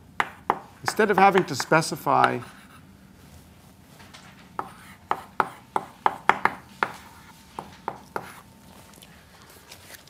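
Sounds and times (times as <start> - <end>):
chalk tapping on blackboard: 0.2 - 2.7, 4.6 - 8.4.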